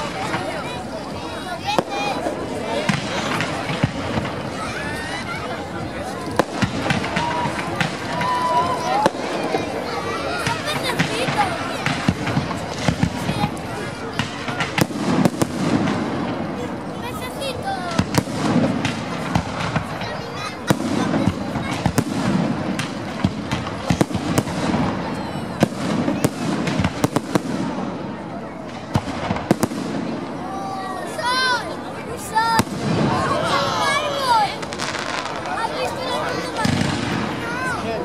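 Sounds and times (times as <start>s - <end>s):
fireworks bangs: 0.0s - 38.0s
fireworks crackling: 0.0s - 38.0s.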